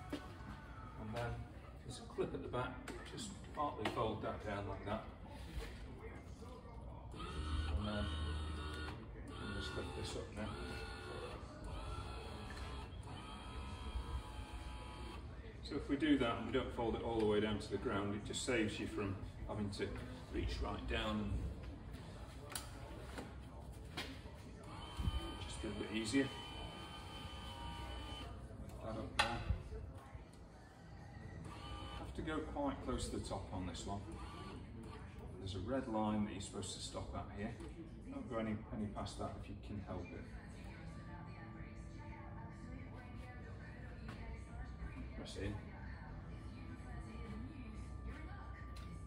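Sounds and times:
electric hoist motor running: 0:07.1 - 0:15.2, 0:24.7 - 0:28.3, 0:31.5 - 0:32.1.

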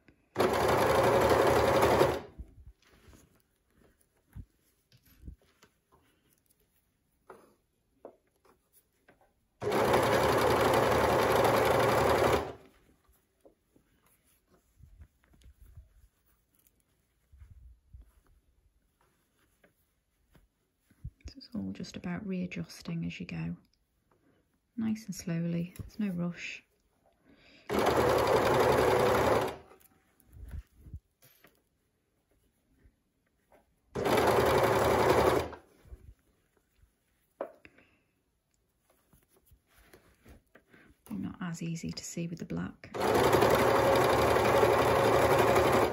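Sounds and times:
fabric handling sounds: 0:00.4 - 0:21.8, 0:27.7 - 0:42.0.

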